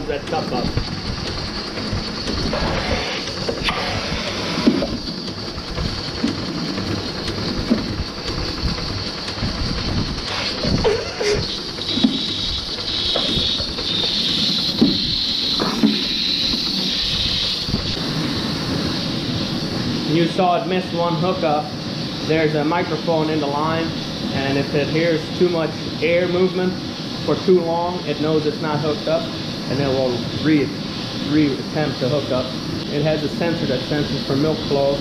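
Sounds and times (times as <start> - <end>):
milking vacuum hissing: 0.0 - 35.0
robotic arm clicks and knocks: 0.2 - 16.7.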